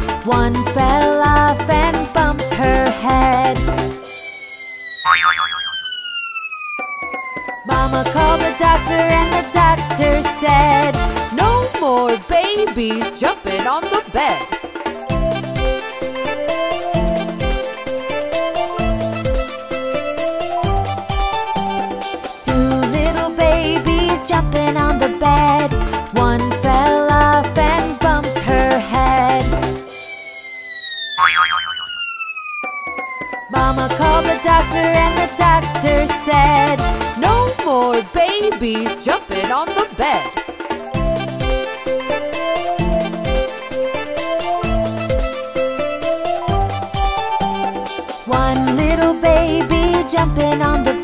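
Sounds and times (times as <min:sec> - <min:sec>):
descending whistle tone: 0:04.0 - 0:07.7, 0:29.8 - 0:33.6
wobbling springy boing: 0:05.0 - 0:05.9, 0:31.2 - 0:32.0.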